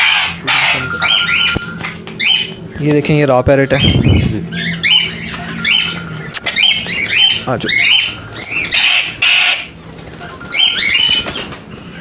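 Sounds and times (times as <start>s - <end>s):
parakeet squawking: 0.0s - 11.5s
wings flapping: 4.9s - 11.8s.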